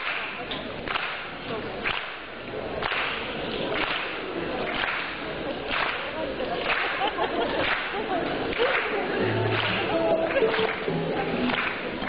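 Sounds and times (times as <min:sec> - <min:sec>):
crowd noise in a hall: 0:00.0 - 0:12.0.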